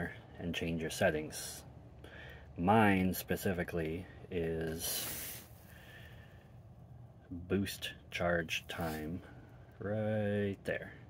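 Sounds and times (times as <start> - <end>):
faint room hiss: 0.0 - 11.0
man breathing out: 5.0 - 6.5.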